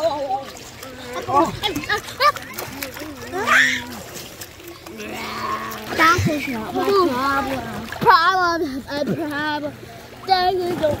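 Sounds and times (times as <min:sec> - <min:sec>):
water splashing in a pool: 0:00.0 - 0:11.0.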